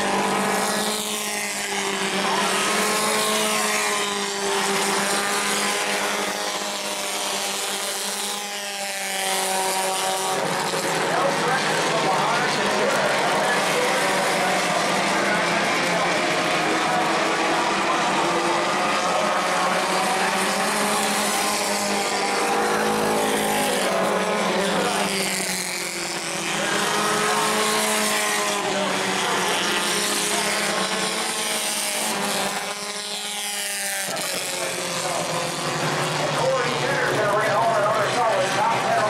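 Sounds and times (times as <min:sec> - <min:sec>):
race car engines passing: 0:00.0 - 0:39.0.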